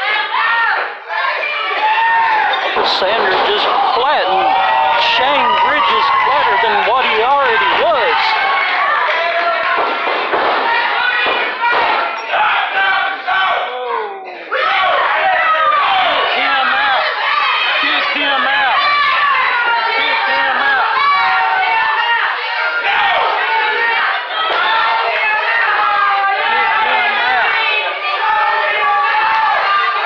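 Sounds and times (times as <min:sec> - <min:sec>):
crowd shouting and cheering: 0:00.0 - 0:30.0.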